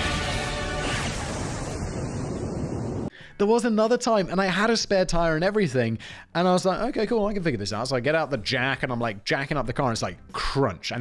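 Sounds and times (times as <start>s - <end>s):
rushing storm wind: 0.0s - 3.1s.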